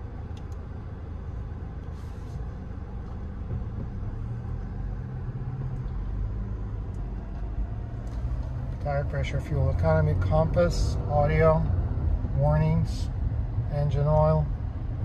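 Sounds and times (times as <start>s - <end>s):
car engine and road rumble: 0.0s - 15.0s.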